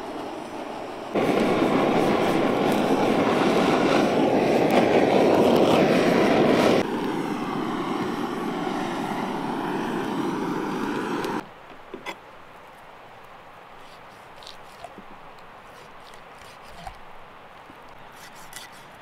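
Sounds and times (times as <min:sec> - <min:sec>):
loud steady rushing noise: 0:00.0 - 0:11.4.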